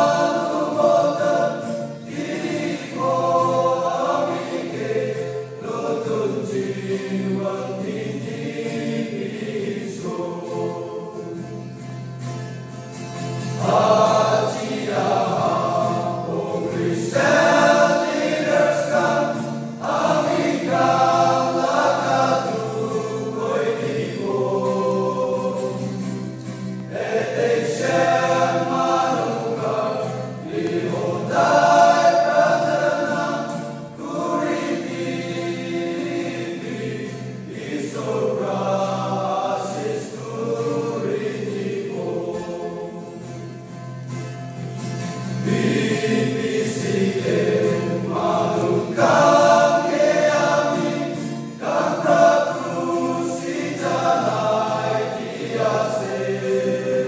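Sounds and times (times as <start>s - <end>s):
male choir singing gospel: 0.0s - 12.2s, 13.1s - 43.8s, 44.8s - 57.0s.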